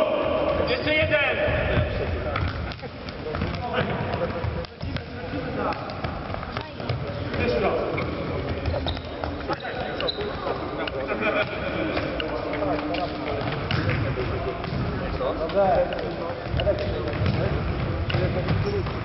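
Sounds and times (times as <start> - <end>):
footsteps: 0.5 - 19.0.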